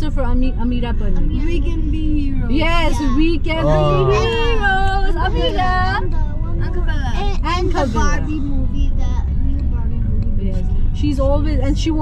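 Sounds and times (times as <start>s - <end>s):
soft talking voices: 1.1s - 12.0s.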